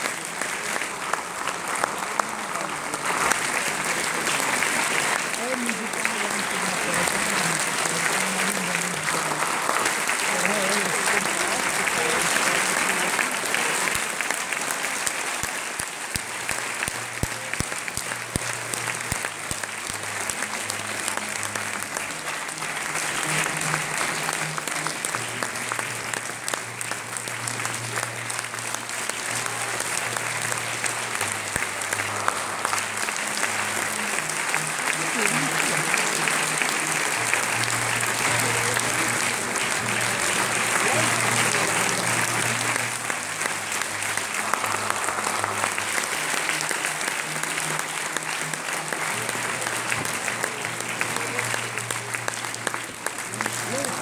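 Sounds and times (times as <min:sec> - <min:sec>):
crowd clapping: 0:00.0 - 0:54.0
crowd voices: 0:00.0 - 0:54.0.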